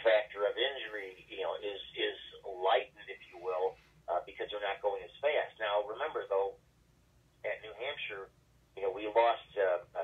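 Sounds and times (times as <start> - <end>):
man talking: 0.0 - 6.6, 7.4 - 10.0.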